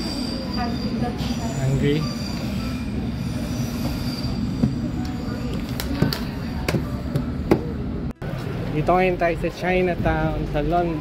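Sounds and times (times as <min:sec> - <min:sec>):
high wheel squeal: 0:00.0 - 0:05.5.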